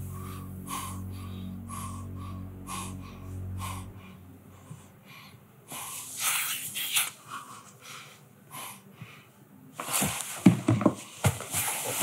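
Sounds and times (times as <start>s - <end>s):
man breathing heavily: 0.0s - 6.3s, 7.2s - 9.5s
low steady hum: 0.0s - 12.0s.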